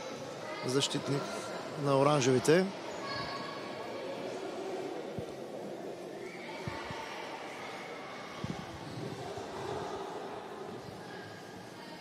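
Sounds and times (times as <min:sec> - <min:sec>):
distant voices in sports hall: 0:00.0 - 0:12.0.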